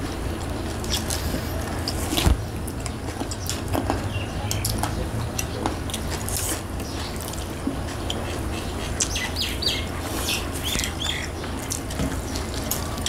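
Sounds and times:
steady low hum: 0.0s - 13.0s
wet chewing and eating sounds: 0.3s - 13.0s
small bird chirping: 8.0s - 12.5s.

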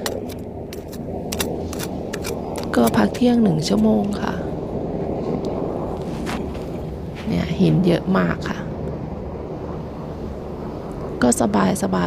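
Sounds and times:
hand hoe scraping sandy soil: 0.0s - 3.3s
steady low rumble: 0.0s - 12.0s.

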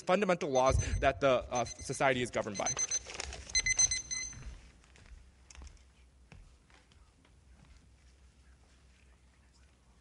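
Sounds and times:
high-pitched timer alarm beeping: 0.6s - 4.6s.

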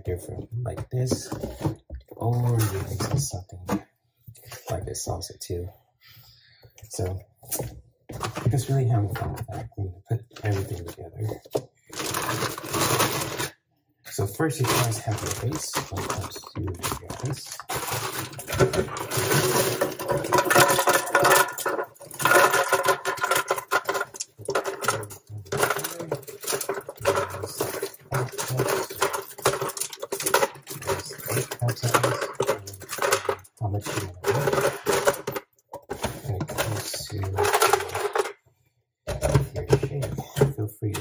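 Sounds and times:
ice cubes clattering into blender jar: 12.0s - 13.5s, 14.6s - 16.4s, 17.0s - 35.4s.

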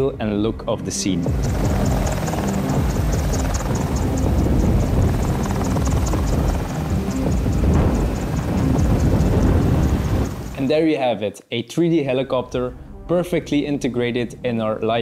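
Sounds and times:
helicopter idling: 1.3s - 10.6s.

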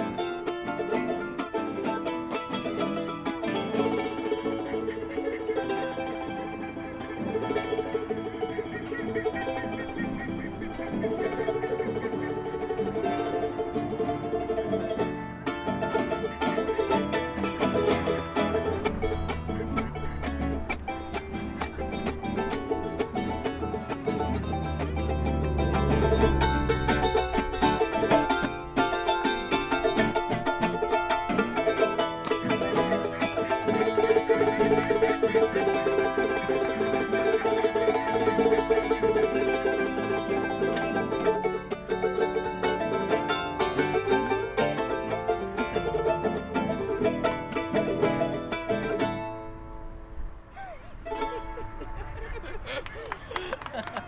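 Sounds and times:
guitar and charango strumming: 0.0s - 52.8s.

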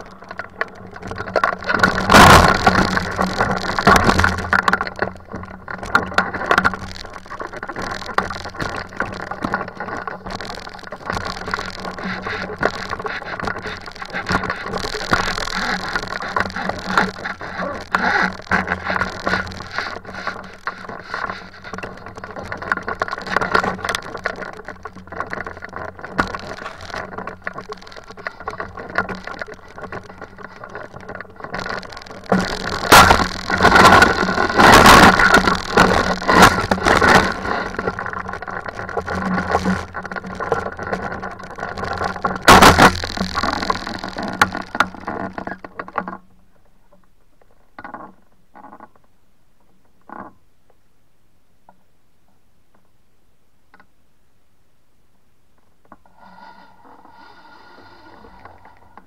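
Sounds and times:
wheels rolling over grass and dirt: 0.0s - 49.1s.

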